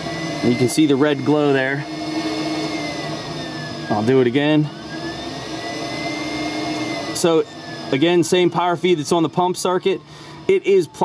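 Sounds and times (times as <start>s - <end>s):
air pump whirring: 0.0s - 11.0s.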